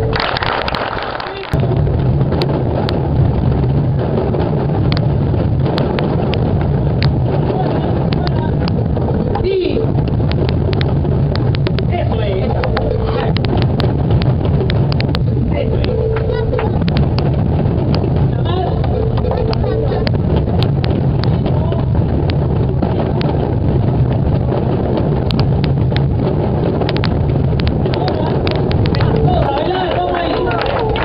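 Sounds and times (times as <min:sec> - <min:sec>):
massed box drums rumbling: 0:00.0 - 0:31.0
voices: 0:07.2 - 0:10.9, 0:11.6 - 0:23.6, 0:27.6 - 0:31.0.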